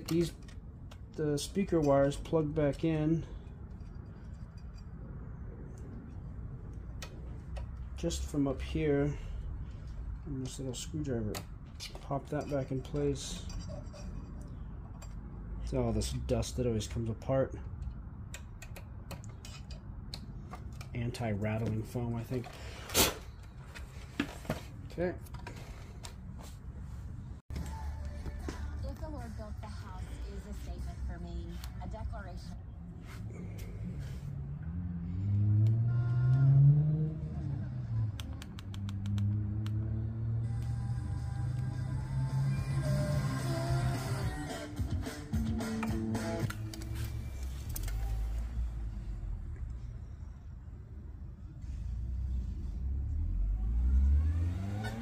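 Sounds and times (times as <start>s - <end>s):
music and voices from radio speaker: 27.5s - 32.6s, 40.5s - 48.4s.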